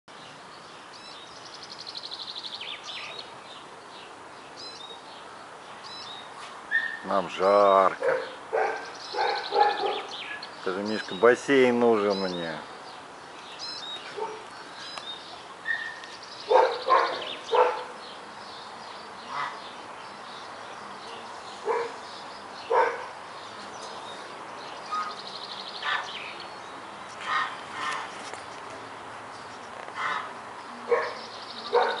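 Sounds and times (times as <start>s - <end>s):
dog barking: 6.7s - 7.0s, 8.0s - 10.1s, 14.2s - 14.5s, 15.7s - 18.0s, 21.6s - 22.0s, 22.7s - 23.1s, 30.9s - 32.0s.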